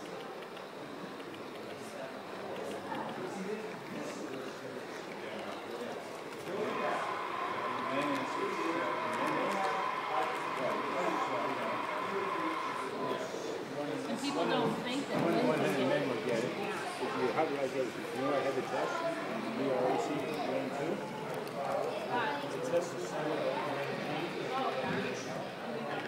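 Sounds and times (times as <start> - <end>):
people talking indistinctly: 0.0 - 26.0
steady high tone: 6.6 - 13.7.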